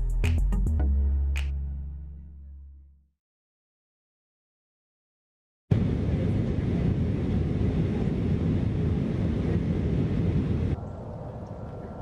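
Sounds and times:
quiet outdoor background: 0:00.0 - 0:03.1, 0:10.8 - 0:12.0
jet airliner cabin rumble: 0:05.7 - 0:10.8.

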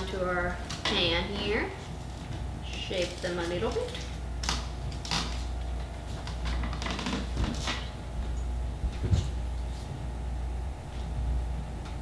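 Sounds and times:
dough rustling and scraping: 0:00.0 - 0:10.2
steady low hum: 0:00.0 - 0:12.0.

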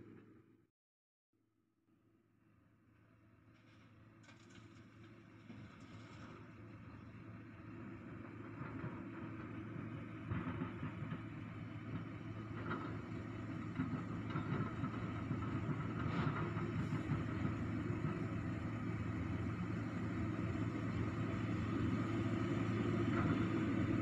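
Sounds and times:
vehicle engine rumbling: 0:03.5 - 0:24.0.

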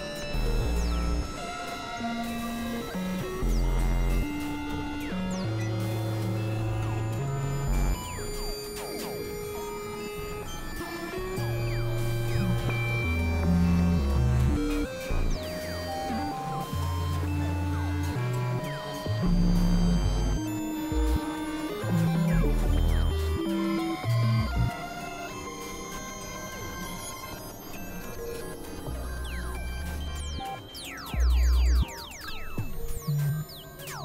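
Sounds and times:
synthesizer drones: 0:00.0 - 0:34.0.

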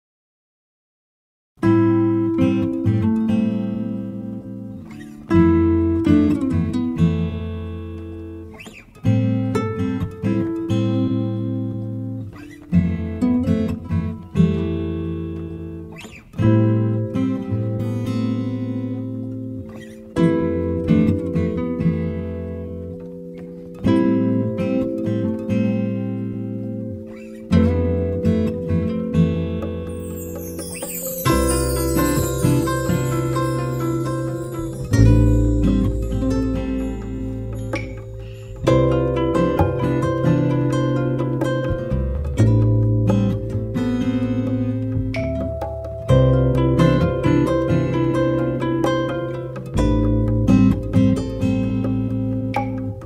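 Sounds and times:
acoustic guitar chords: 0:01.6 - 0:53.0.

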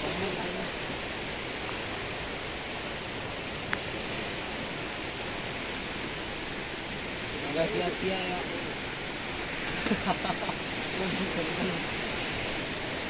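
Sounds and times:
river rushing: 0:00.0 - 0:13.0.

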